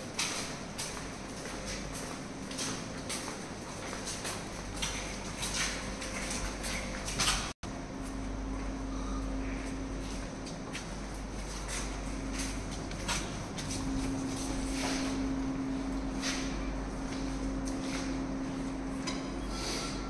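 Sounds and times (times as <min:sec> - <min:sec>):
footsteps on tiled floor: 0:00.0 - 0:08.8, 0:09.6 - 0:19.0
steady low hum: 0:00.0 - 0:20.0.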